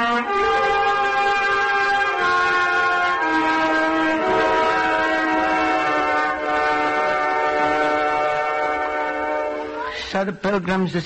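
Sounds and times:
orchestra holding chords: 0.0s - 9.9s.

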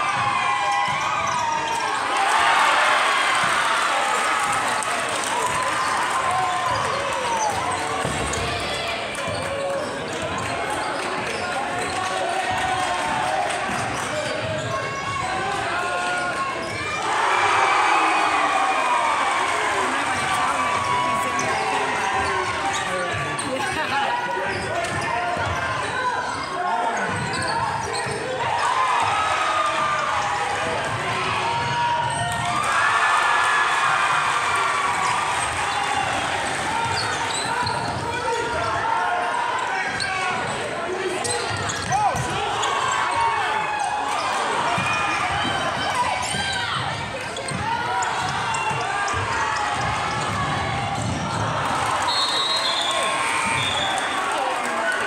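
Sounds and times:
crowd calling and yelling: 0.0s - 55.0s.

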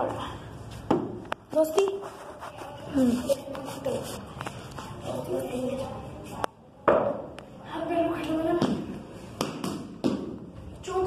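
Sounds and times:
children's voices: 1.6s - 9.1s.

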